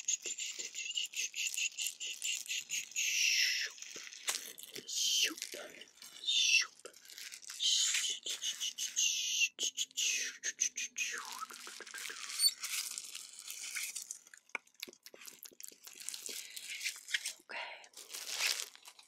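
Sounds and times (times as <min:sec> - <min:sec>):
mouth clicks: 0:07.6 - 0:12.6.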